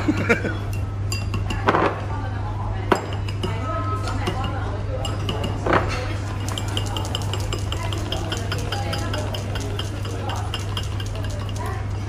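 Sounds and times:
chopsticks clinking on ceramic bowl: 3.0 - 12.0.

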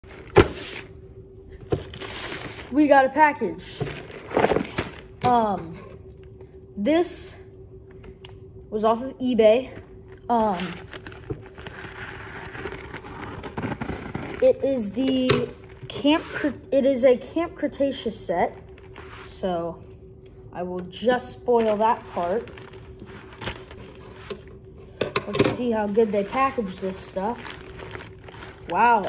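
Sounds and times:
plastic mailer crinkling: 1.7 - 2.8, 3.7 - 5.2, 10.3 - 14.4, 21.5 - 29.0.

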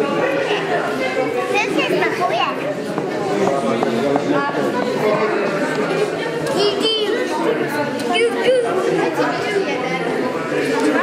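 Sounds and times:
children's voices: 0.0 - 11.0
overlapping voices chatter: 0.0 - 11.0.

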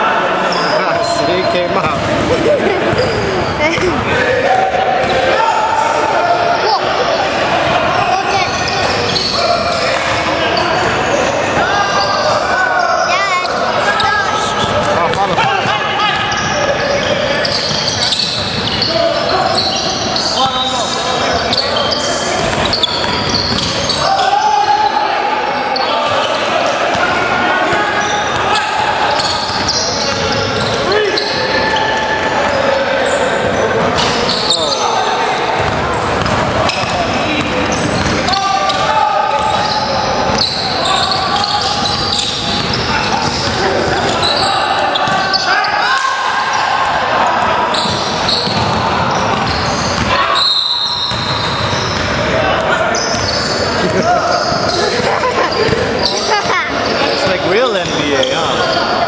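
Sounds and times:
players calling and talking: 0.0 - 59.0.

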